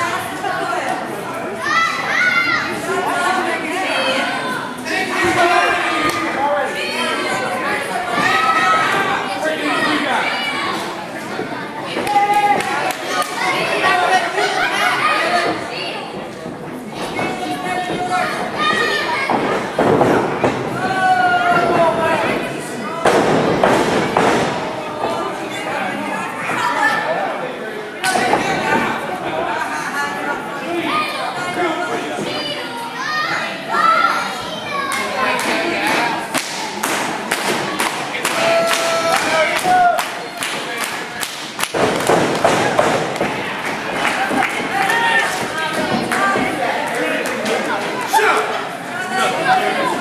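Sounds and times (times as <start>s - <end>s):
spectators shouting and chattering: 0.0s - 50.0s.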